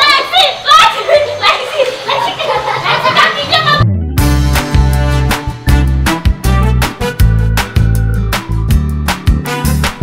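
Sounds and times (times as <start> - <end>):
children shouting while playing: 0.0 - 3.8.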